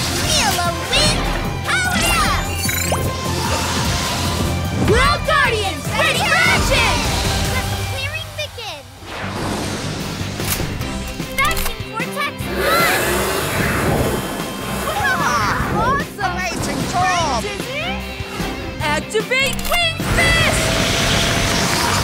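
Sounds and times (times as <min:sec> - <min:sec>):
cartoon background music: 0:00.0 - 0:22.0
animated sound effects: 0:00.4 - 0:04.2, 0:19.7 - 0:22.0.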